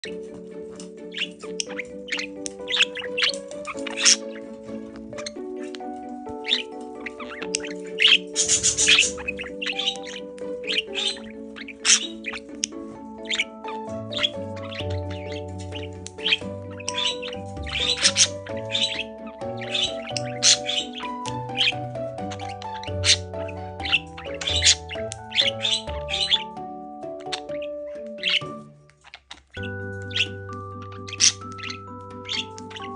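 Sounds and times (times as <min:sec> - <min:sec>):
background music with held notes: 0:00.0 - 0:32.9
budgerigar chirping and chattering: 0:00.0 - 0:32.9.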